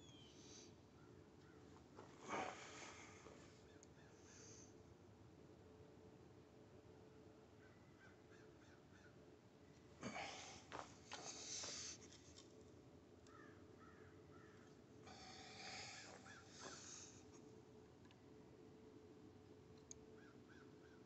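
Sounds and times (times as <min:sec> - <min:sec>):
faint short bird calls: 0:00.0 - 0:01.7, 0:13.3 - 0:17.1, 0:20.2 - 0:21.0
faint steady hum: 0:00.0 - 0:21.0.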